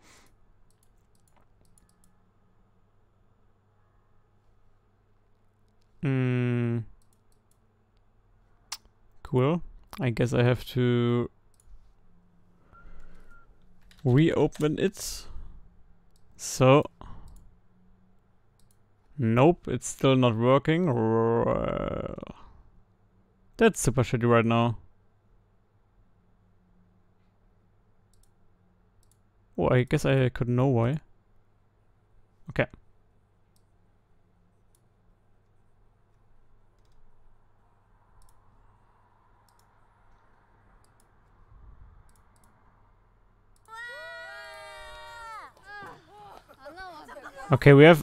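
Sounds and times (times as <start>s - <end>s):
faint computer clicks: 0.6s - 2.2s
man groaning: 6.0s - 6.9s.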